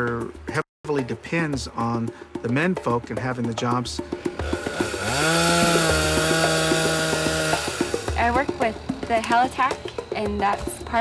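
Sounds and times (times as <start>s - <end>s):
chainsaw revving: 4.2s - 8.6s.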